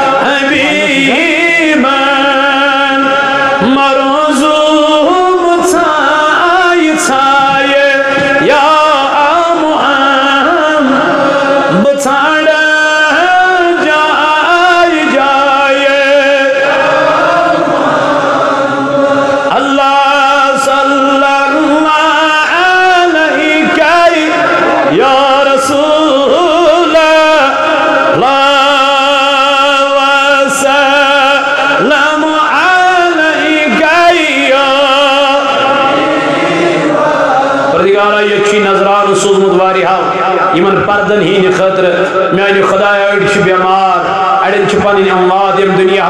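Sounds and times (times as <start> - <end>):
man chanting into a microphone: 0.0 - 46.0.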